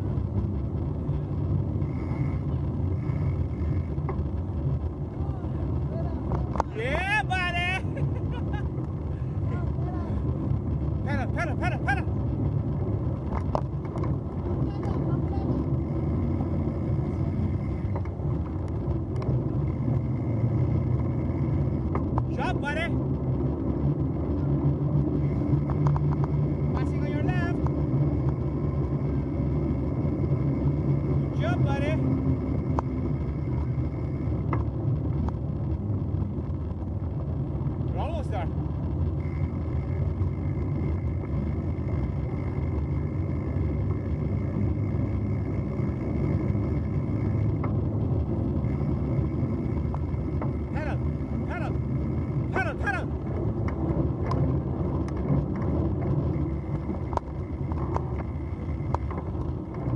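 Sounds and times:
bicycle tyres rolling on gravel: 0.0s - 59.9s.

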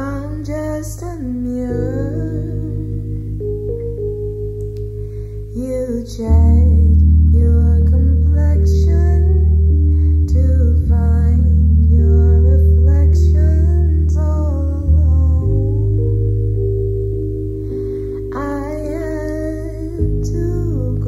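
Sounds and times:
young woman singing: 0.0s - 3.2s, 5.5s - 16.0s, 18.2s - 21.0s
instrumental accompaniment: 0.0s - 21.0s.

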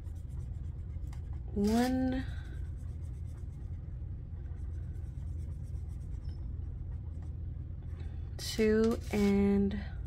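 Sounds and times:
marker coloring on paper: 0.0s - 7.4s, 8.9s - 9.5s
steady low hum: 0.0s - 10.0s.

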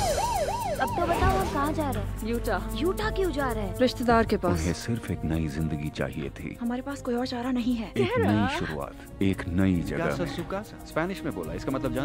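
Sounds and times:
second siren wail: 0.0s - 1.8s
siren yelping: 0.0s - 1.8s.

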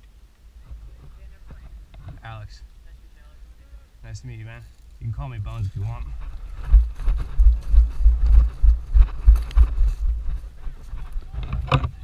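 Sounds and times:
brush rustling against clothing: 5.5s - 11.4s
quick footsteps thumping: 6.2s - 11.1s.

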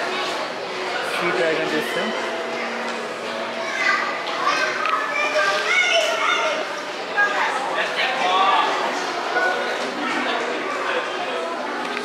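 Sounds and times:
crowd chatter: 0.0s - 12.0s
children talking and calling out: 1.8s - 12.0s.

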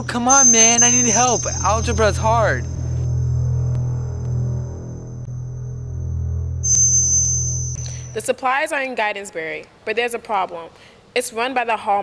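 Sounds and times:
faint high-pitched whine: 0.0s - 5.3s
low hum: 0.0s - 8.3s.

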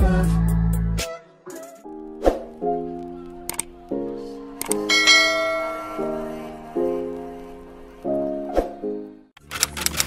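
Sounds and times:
background music with held chords: 0.0s - 9.4s
bright bell ding: 4.9s - 6.2s.

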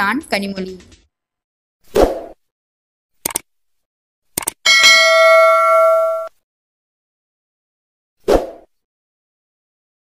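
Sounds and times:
double mouse click: 3.2s - 3.4s, 4.4s - 4.6s
bell ding: 4.7s - 6.3s.

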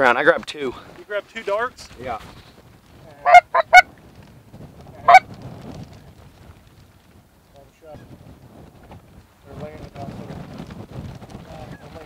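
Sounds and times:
goose honking: 3.2s - 3.9s, 5.0s - 5.2s.

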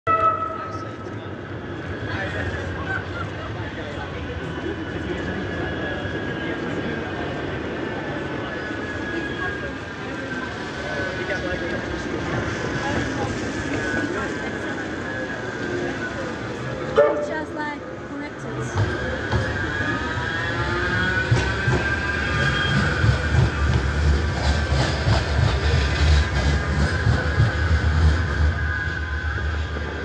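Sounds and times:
tram whine dropping in pitch: 0.1s - 2.7s, 18.5s - 30.0s
tram rolling rumble: 0.1s - 30.0s.

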